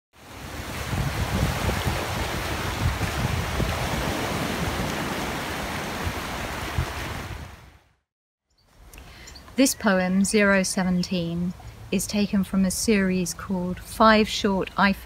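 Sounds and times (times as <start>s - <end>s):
river rushing: 0.2s - 7.8s
sea waves breaking: 0.2s - 8.0s.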